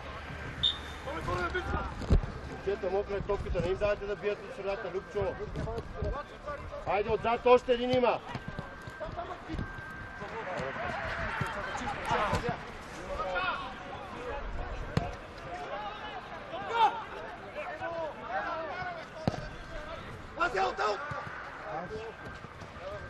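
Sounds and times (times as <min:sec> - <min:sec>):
players shouting: 0:10.3 - 0:14.3, 0:15.4 - 0:23.0
football kicks thudding: 0:19.2 - 0:19.5.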